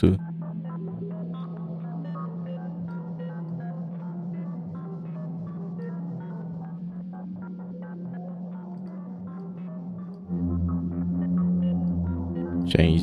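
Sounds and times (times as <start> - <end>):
low synthesizer bass drone: 10.2 - 13.0.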